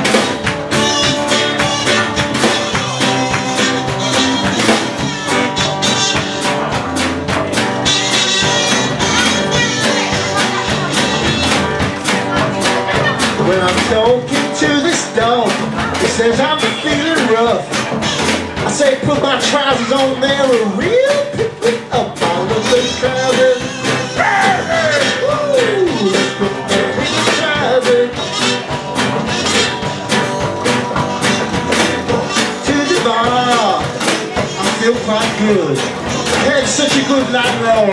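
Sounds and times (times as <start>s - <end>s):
drum kit beat: 0.0s - 37.9s
strummed acoustic guitar: 0.0s - 37.9s
man singing: 12.8s - 29.8s, 32.0s - 37.9s.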